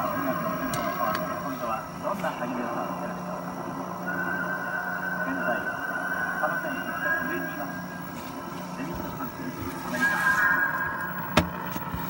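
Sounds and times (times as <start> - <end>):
videotape playback hiss and hum: 0.0 - 12.0
high squeal: 3.8 - 8.5, 9.7 - 11.3.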